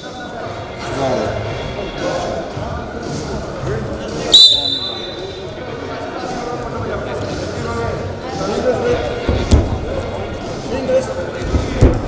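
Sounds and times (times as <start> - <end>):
voices in echoing hall: 0.0 - 12.0
referee's whistle blast: 4.3 - 5.3.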